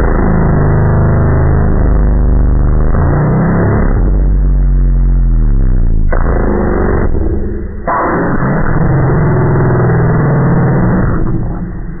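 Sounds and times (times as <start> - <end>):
slowed voice drone: 0.0 - 12.0.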